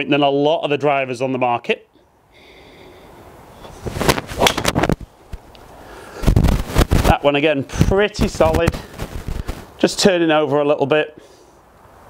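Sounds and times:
golf club striking ball: 4.4s - 4.8s.

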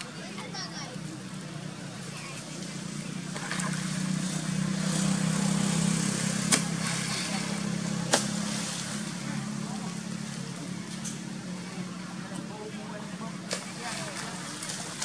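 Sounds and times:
motor engine running: 1.0s - 15.0s.

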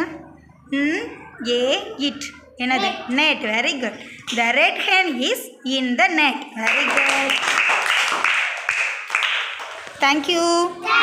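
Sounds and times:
children clapping: 6.6s - 10.0s.

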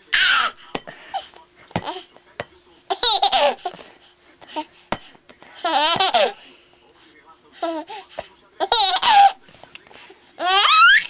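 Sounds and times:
baby laughing: 0.1s - 0.6s, 2.9s - 3.8s, 5.6s - 6.4s, 8.6s - 9.4s, 10.4s - 11.0s.

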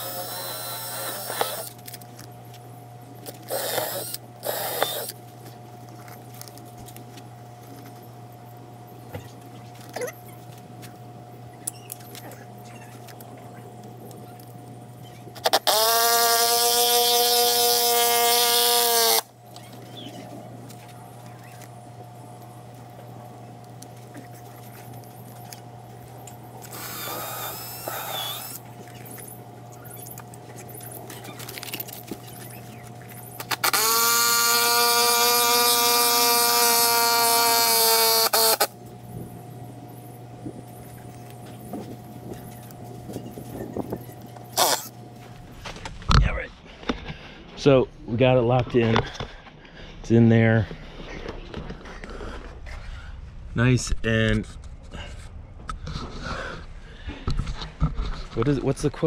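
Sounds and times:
power drill boring into wood: 0.0s - 1.8s, 3.4s - 5.2s, 15.4s - 19.3s, 26.7s - 28.6s, 33.4s - 38.7s, 44.6s - 44.9s.

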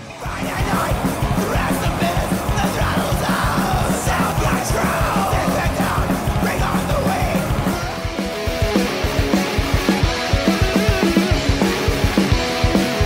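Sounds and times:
distorted guitar bass and drums: 0.0s - 13.0s
yelled vocals: 0.0s - 13.0s.

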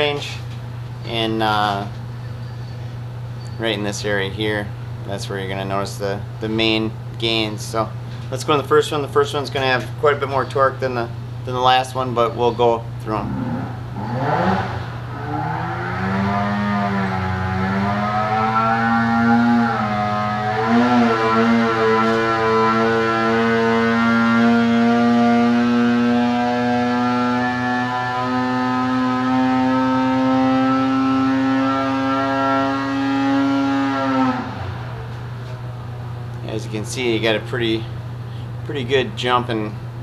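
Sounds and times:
snowmobile engine revving: 13.1s - 34.9s.

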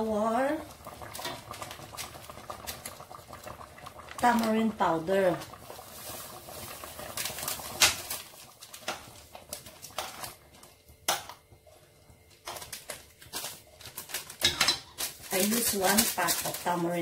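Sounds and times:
foil sachet crinkling: 4.1s - 10.8s, 12.3s - 17.0s.

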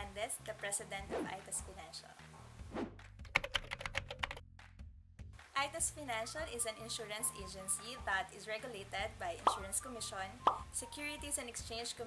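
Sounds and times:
soft background music: 0.0s - 4.4s, 5.3s - 12.0s.

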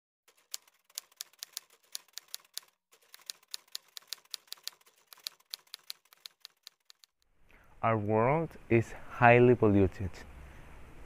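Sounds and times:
typewriter keys clacking: 0.3s - 7.2s.

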